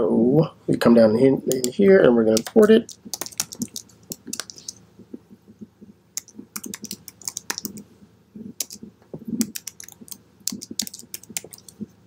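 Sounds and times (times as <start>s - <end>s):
keyboard typing clicks: 2.4s - 4.8s, 6.2s - 7.8s, 8.6s - 8.8s, 9.4s - 11.8s.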